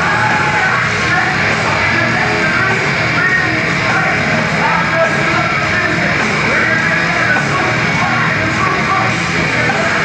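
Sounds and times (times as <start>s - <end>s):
heavy rock band playing: 0.0s - 10.0s
vocalist singing and yelling: 0.0s - 10.0s.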